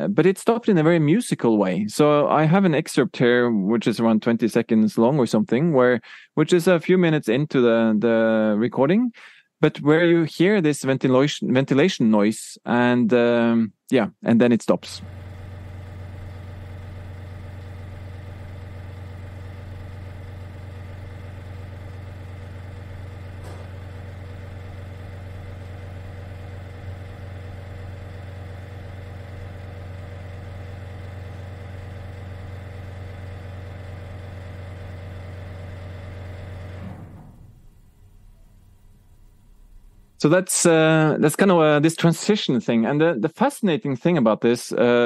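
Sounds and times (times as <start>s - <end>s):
ventilation system humming: 14.7s - 41.8s.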